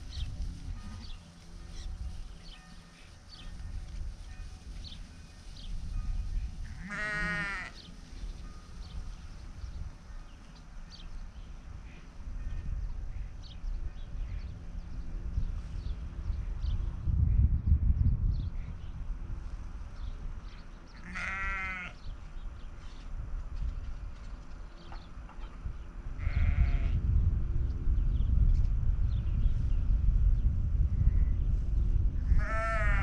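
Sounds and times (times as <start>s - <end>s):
sheep bleating: 6.7s - 7.8s, 21.0s - 22.0s, 26.2s - 27.0s, 32.3s - 33.0s.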